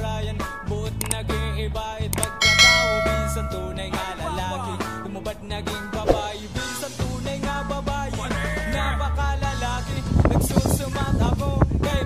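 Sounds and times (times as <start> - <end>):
background music: 0.0 - 9.8
bright bell chime: 2.4 - 5.0.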